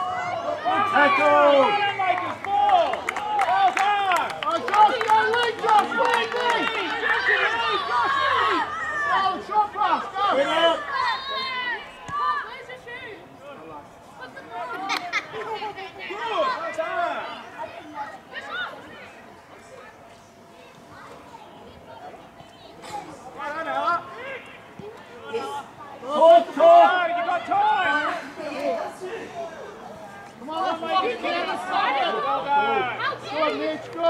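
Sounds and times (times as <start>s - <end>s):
many voices shouting: 0.0s - 12.7s.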